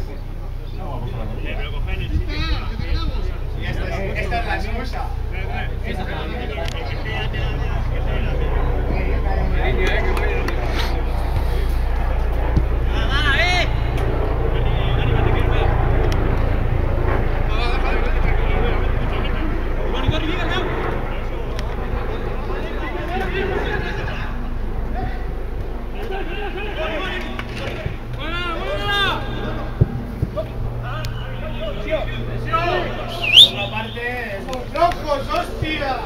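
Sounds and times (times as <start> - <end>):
low rumble on microphone: 0.0 - 26.6
low background hum: 0.0 - 36.0
distant players shouting: 26.0 - 35.8
high-pitched shrill call: 33.1 - 34.0.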